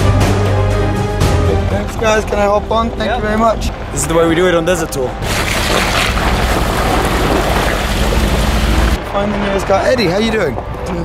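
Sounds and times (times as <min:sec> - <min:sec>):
low rumble: 0:00.0 - 0:11.0
tyre spraying muddy water: 0:05.2 - 0:09.0.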